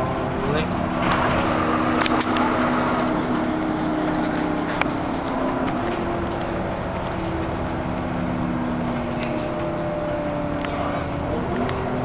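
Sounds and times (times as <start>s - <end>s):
vehicle road rumble: 0.0s - 12.0s.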